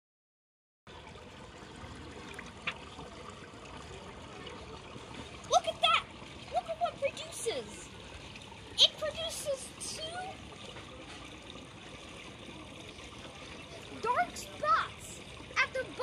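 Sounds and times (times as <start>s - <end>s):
water stirred in a pool: 0.9s - 16.0s.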